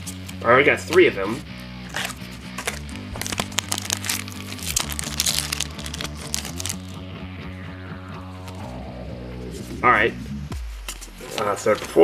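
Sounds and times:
background music: 0.0 - 12.0
foil pack crinkling and tearing: 1.9 - 7.0.

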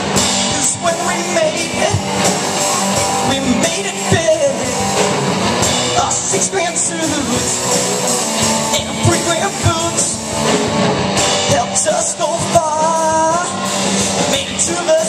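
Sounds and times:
bass guitar: 0.0 - 15.0
drum kit: 0.0 - 15.0
electric guitars: 0.0 - 15.0.

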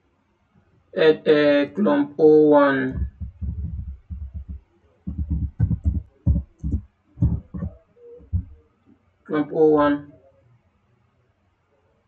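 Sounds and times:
computer keyboard typing: 2.9 - 8.6.

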